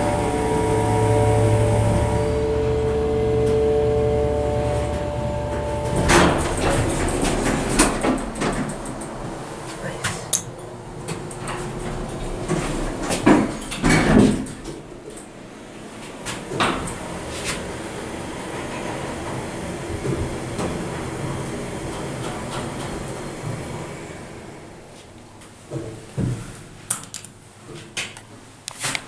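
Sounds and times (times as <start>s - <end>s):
elevator door knocks: 0.0s - 9.4s
elevator running hum: 0.0s - 28.8s.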